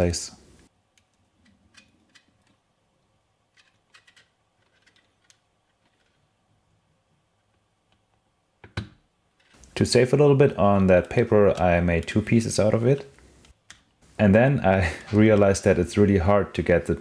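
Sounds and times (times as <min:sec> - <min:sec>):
plastic parts clicking and tapping: 0:01.0 - 0:02.6, 0:03.5 - 0:06.2.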